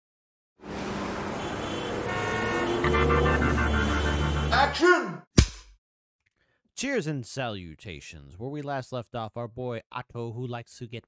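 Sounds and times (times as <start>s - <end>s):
city traffic noise: 0.6s - 4.8s
car horns: 0.9s - 4.8s.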